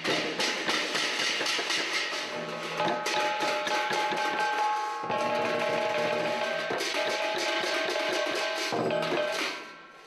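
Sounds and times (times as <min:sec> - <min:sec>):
large drum beating: 0:00.0 - 0:09.4
hand cymbals ringing: 0:02.3 - 0:10.0.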